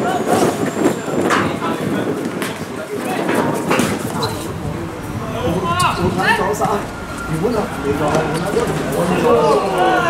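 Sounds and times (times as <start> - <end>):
low background rumble: 3.9 - 10.0.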